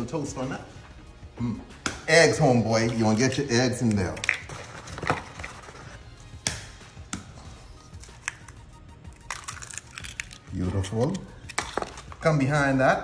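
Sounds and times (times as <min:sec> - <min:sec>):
eggs cracking against glass jug: 0:07.9 - 0:12.2.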